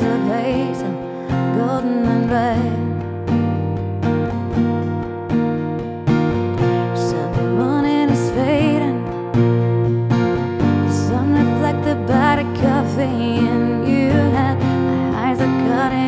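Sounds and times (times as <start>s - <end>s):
woman singing softly: 0.0s - 3.0s, 6.8s - 9.2s, 10.9s - 16.0s
strummed acoustic guitar: 0.0s - 16.0s.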